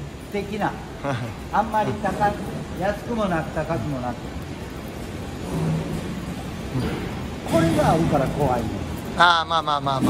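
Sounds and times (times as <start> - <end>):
indoor market hall rumble: 0.0 - 10.0.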